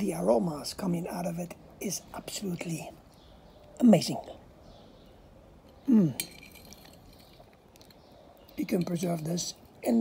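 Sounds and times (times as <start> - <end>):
metal fork clinking on plate: 6.2 - 7.4.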